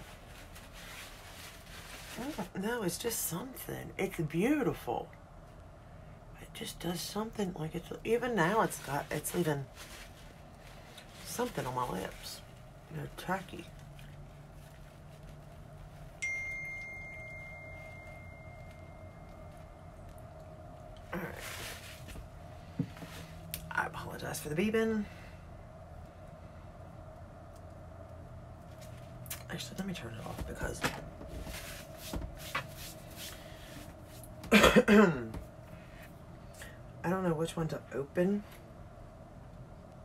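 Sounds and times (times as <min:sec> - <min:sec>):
woman clearing her throat: 0:34.5 - 0:35.3.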